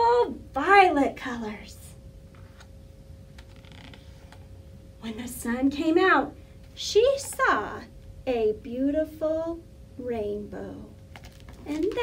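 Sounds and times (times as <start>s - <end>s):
book pages turning: 3.4s - 4.4s, 11.1s - 12.0s.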